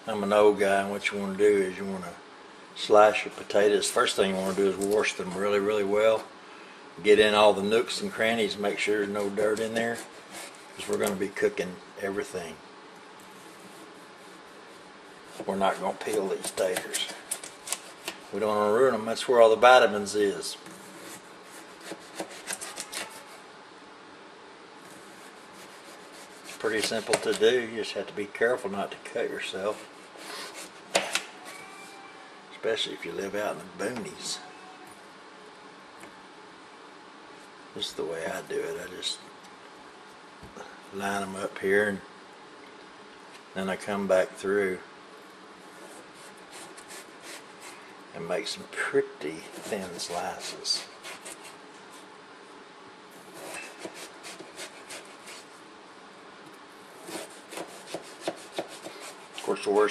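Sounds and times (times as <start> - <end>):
knife scraping cutting board: 8.9 - 11.2, 13.4 - 18.4, 20.6 - 23.4, 24.8 - 27.5, 29.6 - 32.0, 45.7 - 47.8, 49.4 - 51.6, 53.2 - 55.5, 57.0 - 59.8
knife slicing on cutting board: 21.0 - 23.3, 53.3 - 55.5, 57.0 - 59.5.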